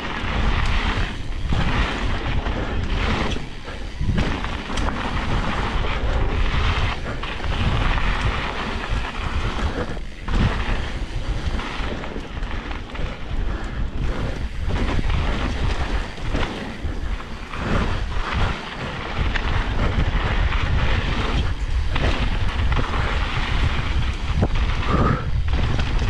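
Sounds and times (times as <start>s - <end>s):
bike rattling and knocking: 0.0s - 26.0s
wind rumble on microphone: 0.0s - 26.0s.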